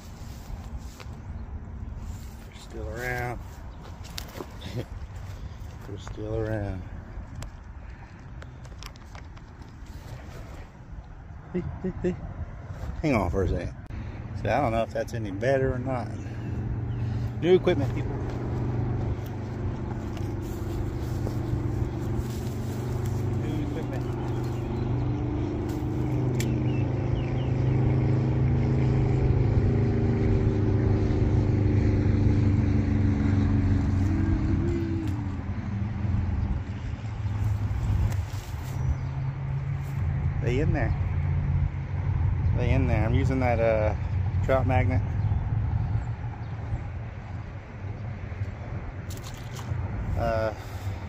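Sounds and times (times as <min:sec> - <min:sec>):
engine running with low hum: 0:00.0 - 0:51.0.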